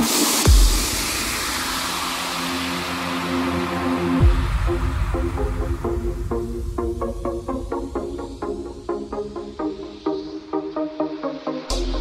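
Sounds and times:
dance music drum beat: 0:00.0 - 0:07.0
hissing noise wash: 0:00.0 - 0:09.1.

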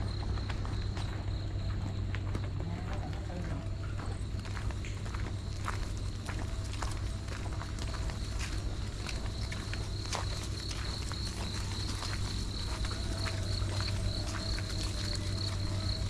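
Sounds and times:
footsteps on dirt path: 0:00.0 - 0:16.0
high-pitched insect trill: 0:00.0 - 0:16.0.

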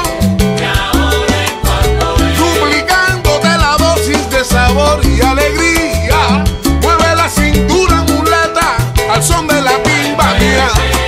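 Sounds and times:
salsa dance music: 0:00.0 - 0:11.0.

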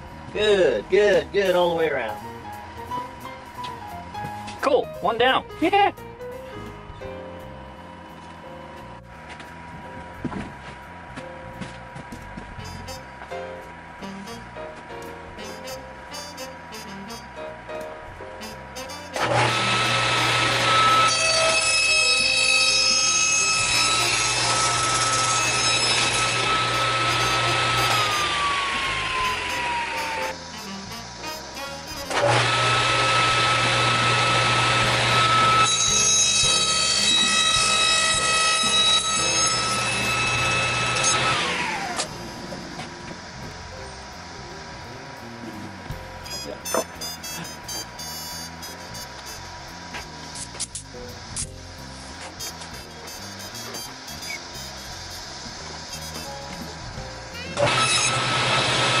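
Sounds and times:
table saw cutting wood: 0:15.4 - 0:17.3, 0:18.4 - 0:44.5, 0:45.2 - 0:50.8, 0:51.4 - 0:59.0
saw blade whine winding down: 0:18.9 - 0:50.3, 0:52.3 - 0:59.0.

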